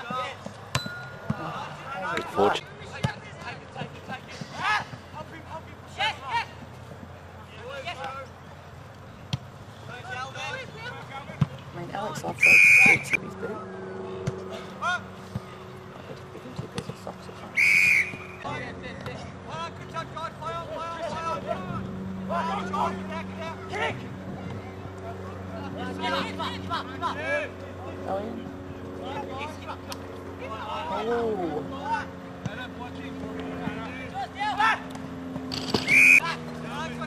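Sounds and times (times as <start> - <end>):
referee whistle blasts: 12.4 - 13.2, 17.6 - 18.4, 35.8 - 36.2.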